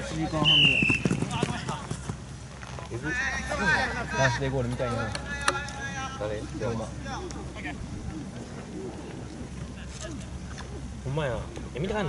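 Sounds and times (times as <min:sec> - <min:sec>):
people's voices: 0:00.0 - 0:12.0
whistle blast: 0:00.4 - 0:01.3.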